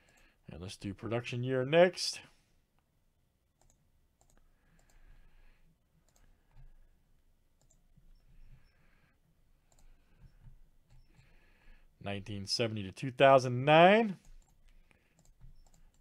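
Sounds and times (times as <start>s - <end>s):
computer mouse and keyboard clicks: 3.6s - 5.0s, 6.0s - 6.8s, 7.6s - 7.9s, 9.6s - 11.3s, 14.2s - 16.0s.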